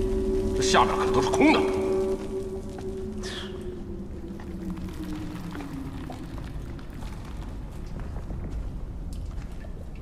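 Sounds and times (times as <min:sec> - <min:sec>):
low suspenseful drone: 0:00.0 - 0:09.1.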